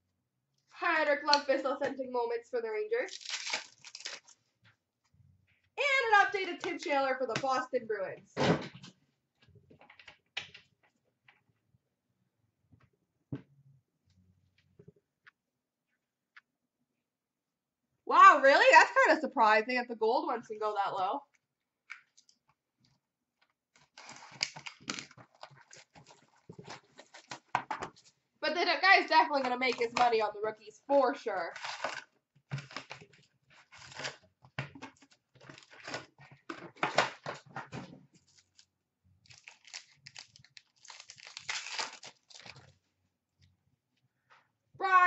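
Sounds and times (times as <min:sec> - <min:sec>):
packaging crinkling and rustling: 0:03.1 - 0:04.4, 0:23.8 - 0:28.1, 0:31.5 - 0:37.5, 0:38.2 - 0:42.8.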